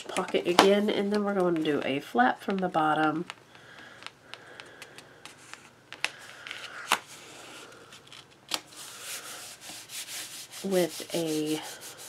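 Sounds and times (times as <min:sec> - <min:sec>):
hands rubbing across paper: 0:08.7 - 0:12.0.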